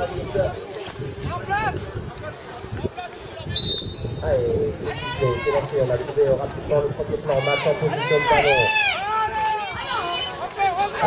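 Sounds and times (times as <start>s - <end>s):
referee's whistle blast: 3.6s - 4.2s.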